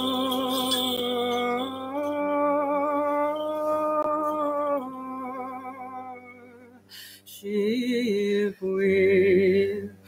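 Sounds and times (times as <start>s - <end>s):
person singing long held chant note: 0.0s - 9.9s.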